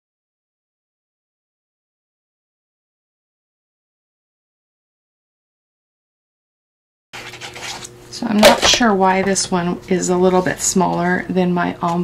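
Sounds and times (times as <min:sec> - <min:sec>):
hands rustling paper on table: 0:07.2 - 0:08.7
faint steady hum: 0:07.2 - 0:12.0.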